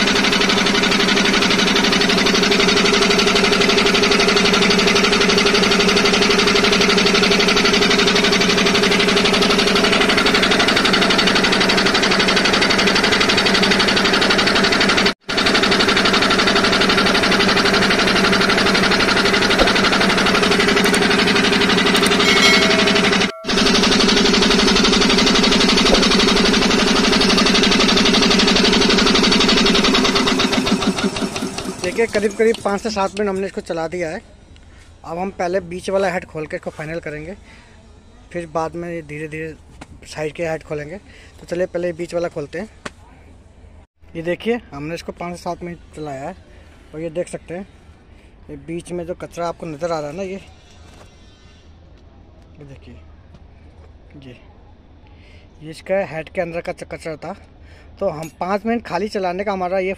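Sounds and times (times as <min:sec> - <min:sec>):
air compressor pump running: 0:00.0 - 0:35.4.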